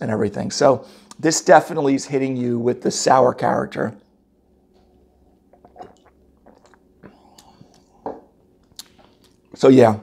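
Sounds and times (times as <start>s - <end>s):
sipping and swallowing: 5.3s - 8.0s
mouth clicks and lip smacks: 5.5s - 7.9s, 8.6s - 9.6s.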